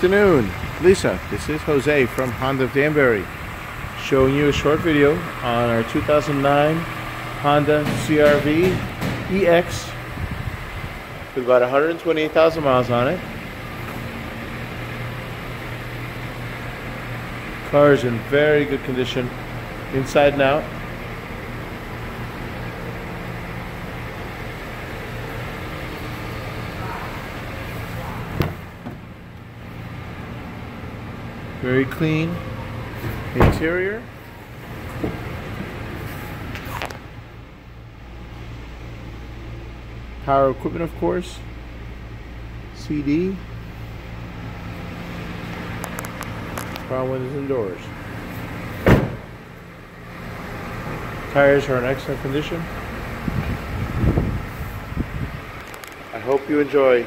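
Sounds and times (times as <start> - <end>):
steady low hum: 0.0 - 57.0
car door shutting thud: 28.4 - 29.1, 33.0 - 33.7, 48.8 - 49.4
car door latch click: 48.8 - 49.3.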